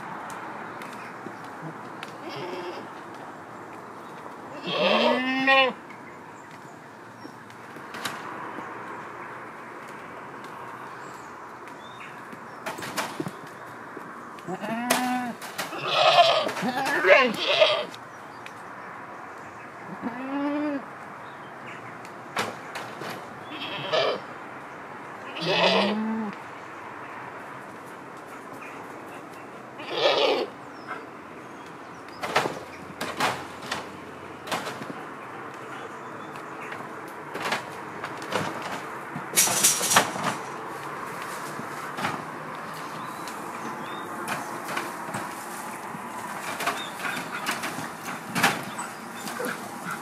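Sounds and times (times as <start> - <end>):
goat bleating: 1.6 - 2.9, 4.5 - 5.8, 14.4 - 18.0, 19.9 - 20.8, 23.5 - 24.2, 25.3 - 26.4, 29.8 - 30.5.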